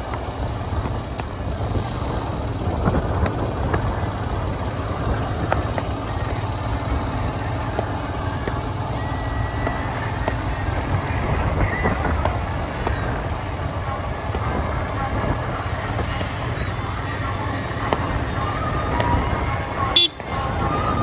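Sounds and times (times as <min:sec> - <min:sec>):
vehicle rumble in motion: 0:00.0 - 0:21.0.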